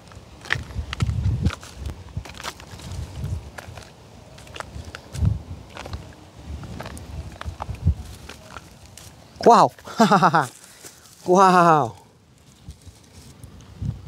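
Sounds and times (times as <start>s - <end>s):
footsteps crunching through straw: 0.4s - 13.4s.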